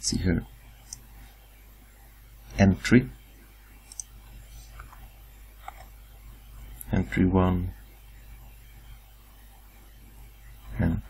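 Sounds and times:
faint hum: 0:00.0 - 0:11.0
low steady hiss: 0:00.0 - 0:11.0.

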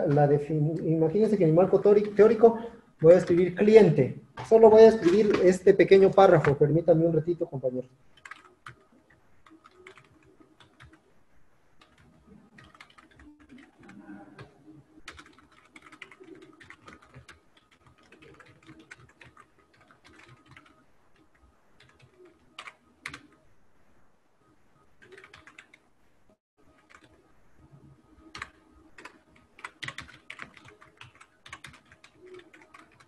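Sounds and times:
computer keyboard typing: 0:01.2 - 0:03.8, 0:04.4 - 0:06.6, 0:08.1 - 0:11.1, 0:11.8 - 0:23.4, 0:25.0 - 0:25.8, 0:26.8 - 0:27.2, 0:28.3 - 0:33.0.

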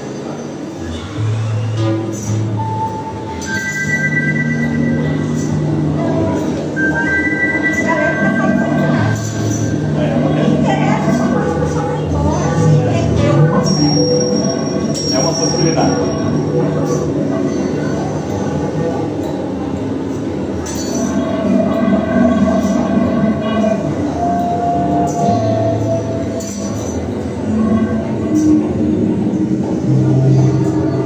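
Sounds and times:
layered electronic drone: 0:00.0 - 0:31.0
low hum: 0:00.0 - 0:31.0
thin high tone: 0:02.2 - 0:19.6.

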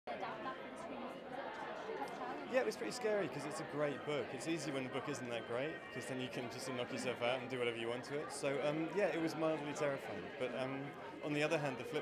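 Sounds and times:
crowd chatter: 0:00.1 - 0:12.0.

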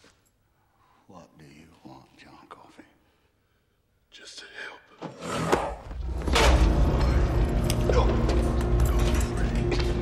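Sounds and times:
man whispering: 0:01.0 - 0:03.3, 0:04.0 - 0:05.0.

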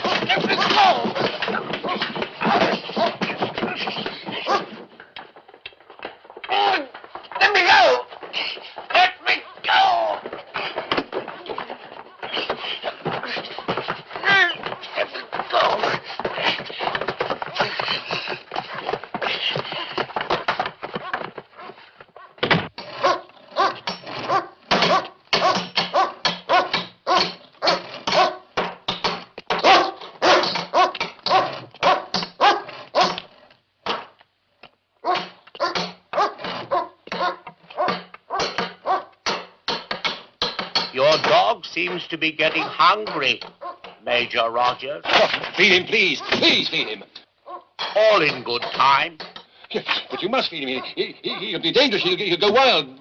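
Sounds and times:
dog barking and growling: 0:00.0 - 0:04.8, 0:21.0 - 0:28.5, 0:29.5 - 0:33.4, 0:35.0 - 0:39.2, 0:41.9 - 0:44.0, 0:46.0 - 0:47.8, 0:49.8 - 0:51.6.

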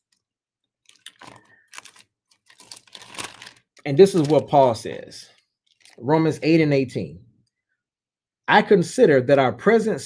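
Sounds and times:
thin pages rustling: 0:00.8 - 0:06.0.

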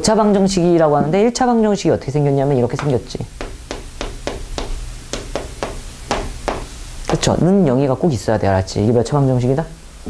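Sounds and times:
chalk tapping on blackboard: 0:02.8 - 0:07.4.

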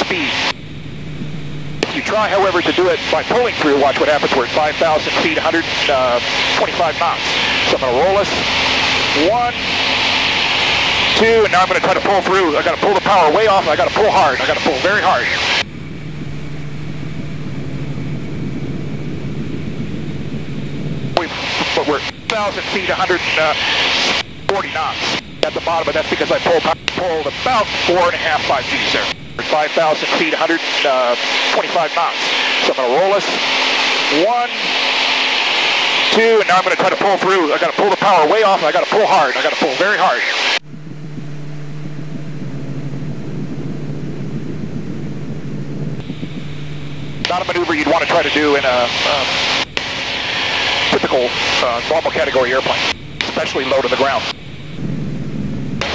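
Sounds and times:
rushing air: 0:00.0 - 0:37.7, 0:40.2 - 0:55.9
aircraft engine drone: 0:00.0 - 0:55.9
airflow hiss: 0:01.8 - 0:38.5, 0:45.8 - 0:54.9.

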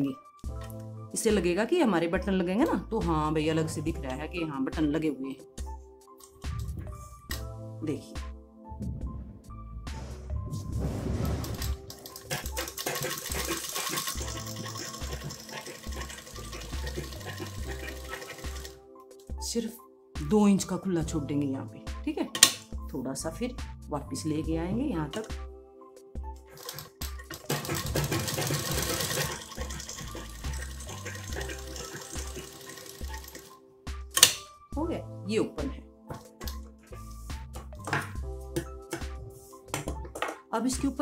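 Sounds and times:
background music with bass line: 0:02.2 - 0:19.6, 0:22.8 - 0:41.0
sewing machine stitching: 0:11.5 - 0:18.8, 0:26.5 - 0:33.5.

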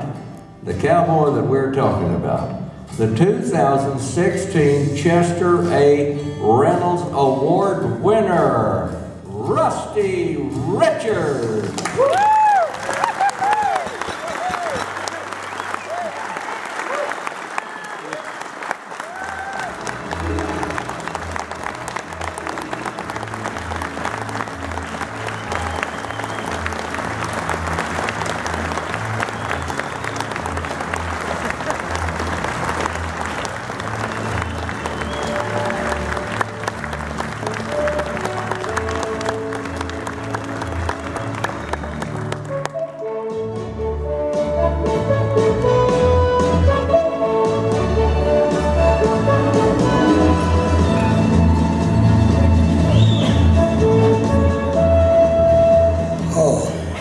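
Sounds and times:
audience applauding and cheering: 0:11.4 - 0:43.1, 0:48.6 - 0:54.4
whoops: 0:11.9 - 0:18.4, 0:19.0 - 0:19.9, 0:25.2 - 0:26.7.

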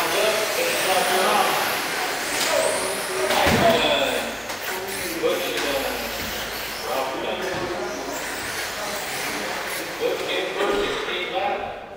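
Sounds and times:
rc cars electric motors and tyres: 0:00.0 - 0:10.6.

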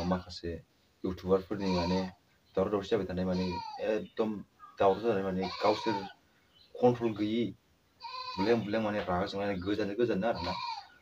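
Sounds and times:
man talking animatedly: 0:00.0 - 0:06.1, 0:06.8 - 0:07.6, 0:08.4 - 0:10.6.

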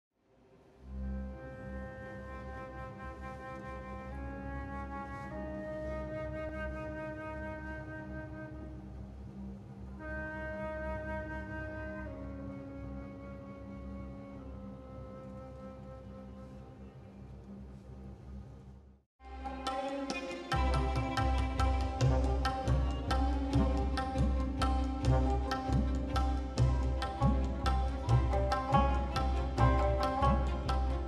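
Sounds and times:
flute long-held notes: 0:00.8 - 0:18.0, 0:19.2 - 0:31.0.

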